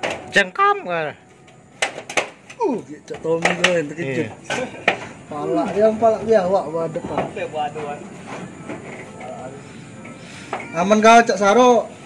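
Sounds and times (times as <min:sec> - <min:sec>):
knocks and clatters on roof tiles: 0:00.0 - 0:00.4, 0:01.8 - 0:09.4.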